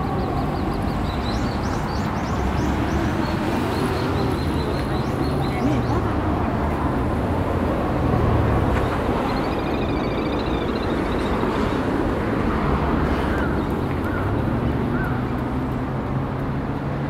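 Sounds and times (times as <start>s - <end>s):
city traffic with low hum: 0.0s - 17.0s.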